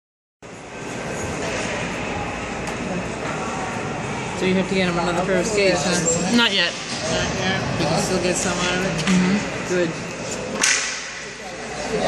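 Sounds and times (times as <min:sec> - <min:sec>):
indoor ice rink din: 0:00.4 - 0:12.0.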